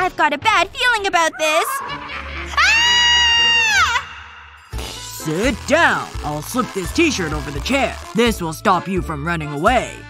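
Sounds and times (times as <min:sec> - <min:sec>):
woman screaming: 0:01.3 - 0:04.4.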